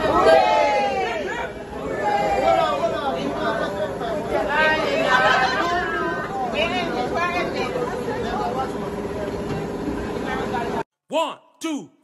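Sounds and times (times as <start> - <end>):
group of people chattering: 0.0 - 10.8.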